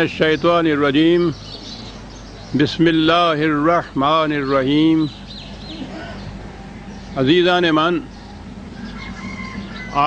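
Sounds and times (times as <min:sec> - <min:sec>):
distant bird call: 0:00.0 - 0:10.0.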